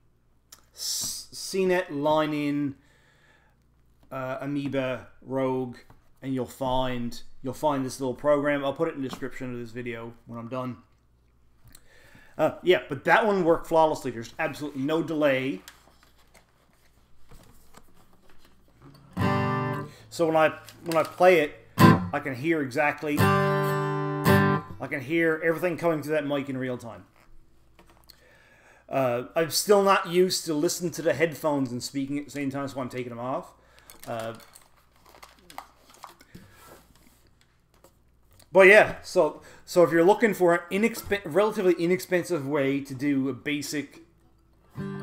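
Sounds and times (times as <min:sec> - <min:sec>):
headphones clicking and rustling: 0:15.4 - 0:19.1, 0:20.5 - 0:21.4, 0:27.1 - 0:28.2, 0:33.7 - 0:38.5
acoustic guitar chord strummed: 0:19.0 - 0:20.0, 0:21.8 - 0:22.2, 0:23.2 - 0:24.8, 0:44.7 - 0:45.0.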